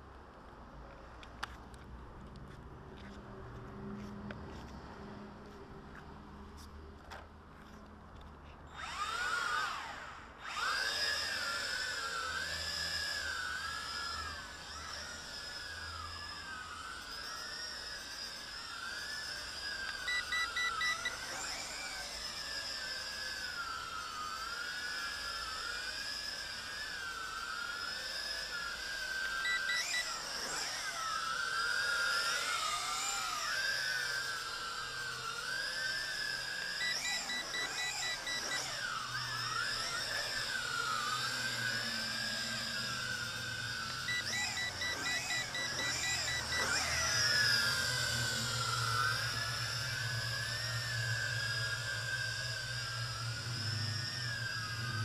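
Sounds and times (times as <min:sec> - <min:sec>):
drone propellers whining: 0:01.4 - 0:55.0
rapid electronic beeps: 0:20.0 - 0:21.2, 0:29.4 - 0:30.2, 0:36.8 - 0:38.8, 0:44.0 - 0:48.1.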